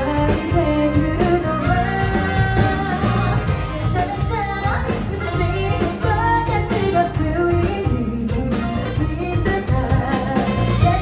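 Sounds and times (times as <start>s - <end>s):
drums: 0.0s - 11.0s
saxophone: 0.0s - 11.0s
woman singing into a microphone: 0.0s - 11.0s.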